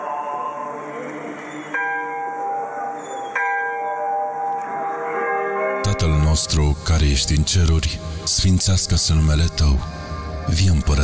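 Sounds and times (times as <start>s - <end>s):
bell ringing: 0.0s - 6.9s.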